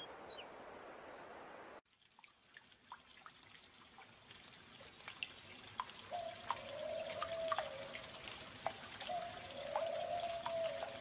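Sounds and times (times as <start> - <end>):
water dripping: 1.8 - 11.0.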